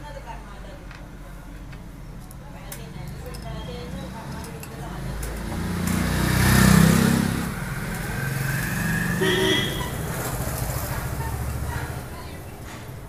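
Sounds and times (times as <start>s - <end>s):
motor vehicle passing: 3.6s - 13.0s.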